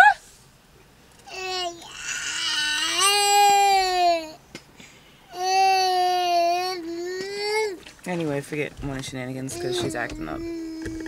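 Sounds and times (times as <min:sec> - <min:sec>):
toddler crying: 0:01.3 - 0:04.4, 0:05.3 - 0:07.8, 0:09.6 - 0:11.0.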